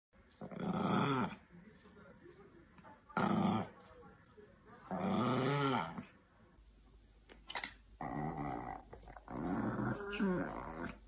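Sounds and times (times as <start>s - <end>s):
small dog growling: 0.4s - 1.4s, 3.2s - 3.8s, 4.9s - 6.1s, 8.0s - 11.0s.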